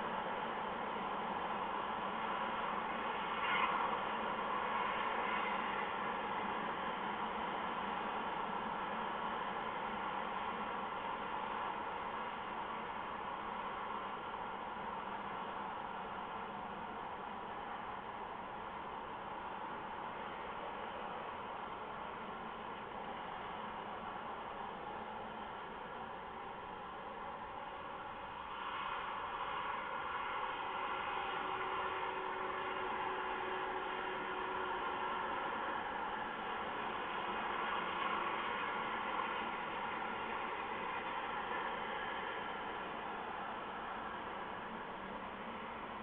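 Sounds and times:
steady hissing noise: 0.0 - 46.0.

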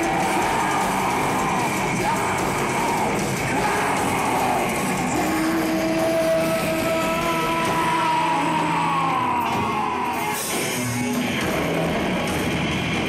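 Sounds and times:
psychedelic rock band playing: 0.0 - 13.0.

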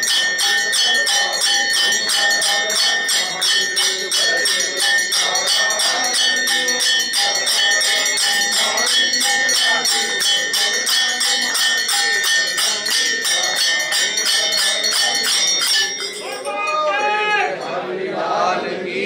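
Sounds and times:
temple bells ringing: 0.0 - 17.3.

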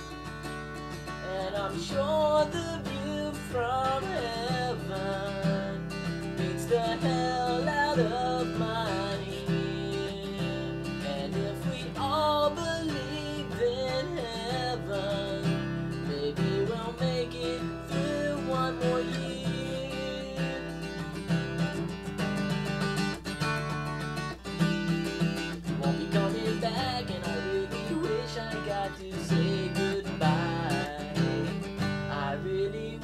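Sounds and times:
man singing: 0.0 - 21.9, 25.6 - 33.0
acoustic guitar strumming: 0.0 - 33.0.

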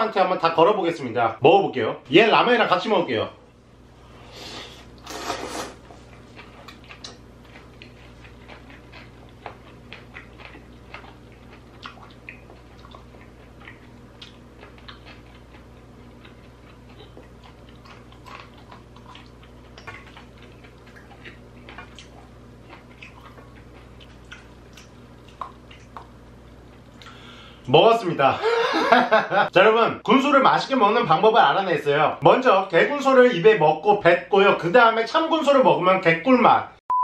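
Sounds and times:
steady low hum: 0.0 - 35.8
slurping noodles: 4.4 - 5.8
chewing with wet mouth clicks: 6.1 - 27.2.

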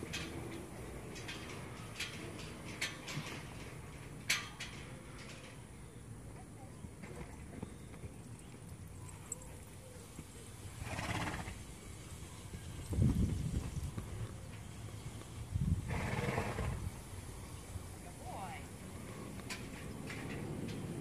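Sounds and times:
hooves on sand: 9.5 - 16.5.

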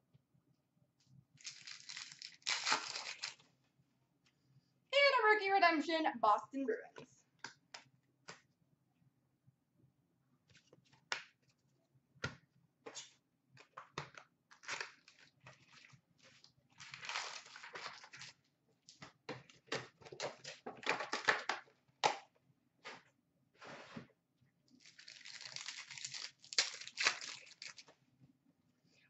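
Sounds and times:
foil wrappers crinkling and tearing: 1.4 - 3.4, 14.5 - 18.4, 24.8 - 27.9.

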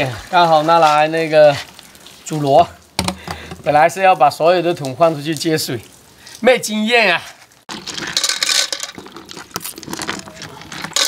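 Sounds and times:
water splashing: 0.0 - 3.9, 7.5 - 11.0
shells clinking in a pot: 7.7 - 11.0.

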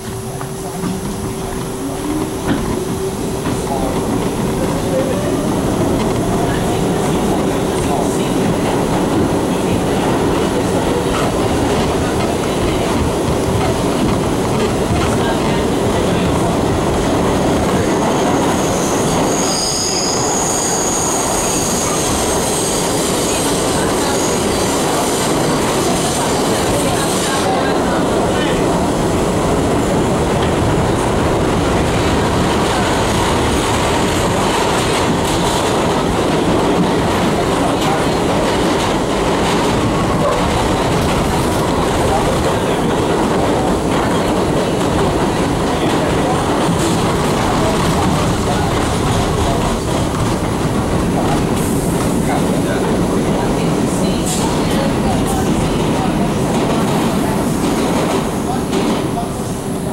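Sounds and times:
subway wheels rumbling on rails: 0.0 - 59.9.

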